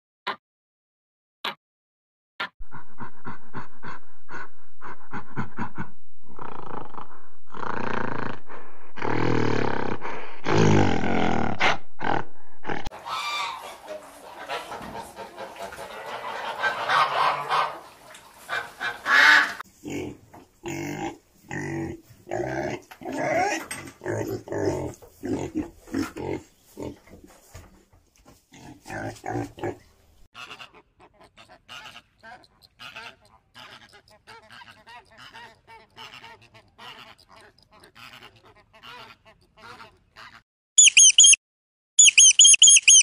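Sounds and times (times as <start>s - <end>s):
geese honking: 12.9s - 19.6s, 30.4s - 41.1s.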